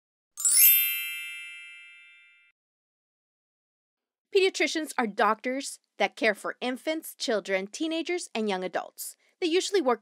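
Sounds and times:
bright chime sting: 0.4s - 2.5s.

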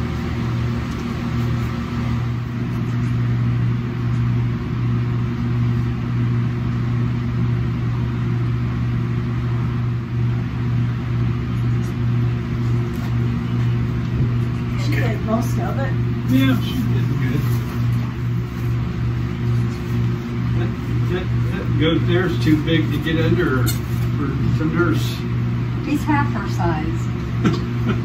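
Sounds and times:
low mechanical hum: 0.0s - 28.0s.

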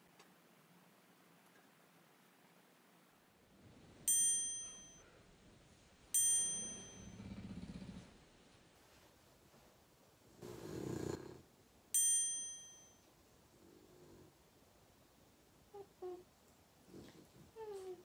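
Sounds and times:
bell-like chime: 4.1s - 5.2s, 6.2s - 7.4s, 12.0s - 13.1s.

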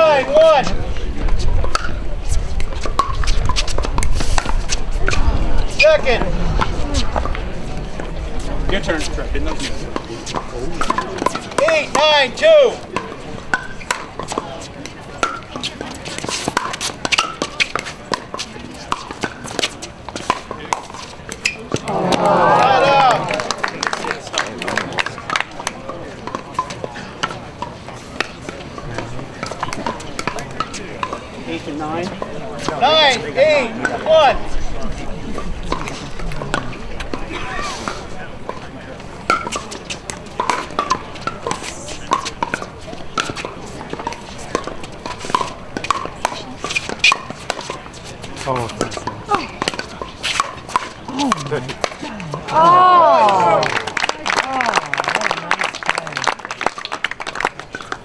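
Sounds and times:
chatter of people: 0.0s - 58.0s
paddles striking balls: 5.8s - 34.4s, 37.9s - 58.0s
balls bouncing on hard court: 12.9s - 31.2s, 39.3s - 53.8s.

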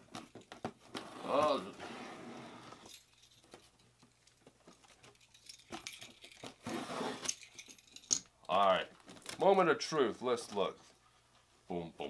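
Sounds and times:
cardboard box rustling scrapes: 0.9s - 2.9s, 6.6s - 7.3s.

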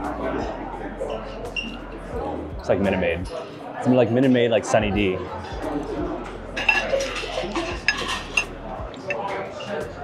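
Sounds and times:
knife and fork scraping a plate: 6.6s - 9.8s.

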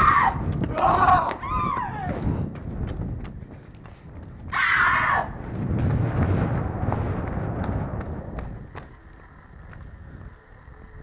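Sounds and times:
low rumble: 0.0s - 11.0s
running footsteps on pavement: 0.0s - 11.0s.

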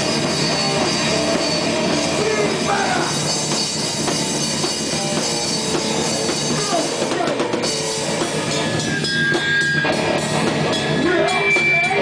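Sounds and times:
drum kit: 0.0s - 12.0s
guitar playing: 0.0s - 12.0s.

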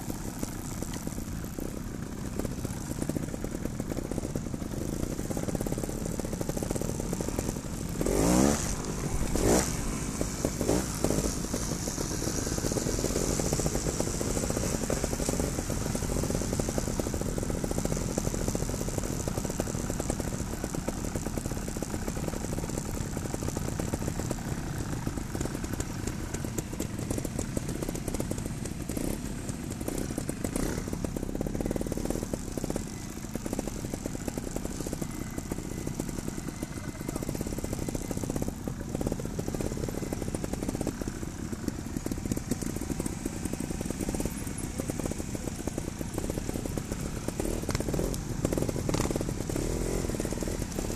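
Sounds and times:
motorcycle engines revving: 0.0s - 50.9s.

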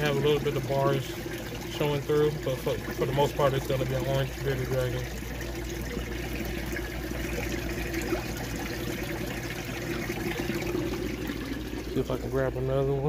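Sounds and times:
constant low hum: 0.0s - 13.0s
trickle of running water: 0.0s - 13.0s.

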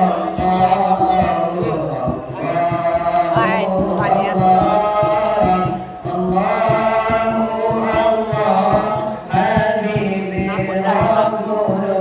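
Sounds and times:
boys singing a cappella: 0.0s - 12.0s.

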